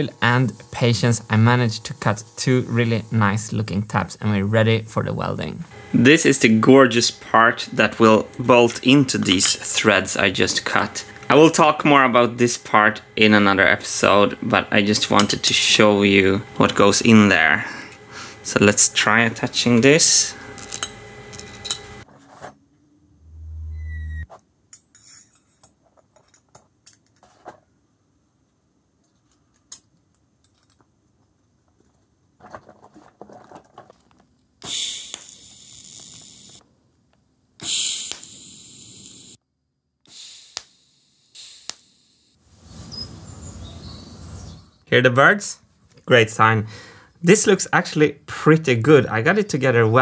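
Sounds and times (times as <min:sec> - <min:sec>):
brief low hum: 0:22.8 - 0:24.3
faint birds chirping: 0:42.6 - 0:44.9.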